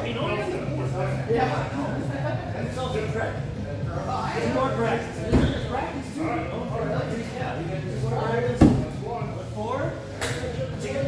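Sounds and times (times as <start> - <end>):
people talking in a large hall: 0.0 - 11.0.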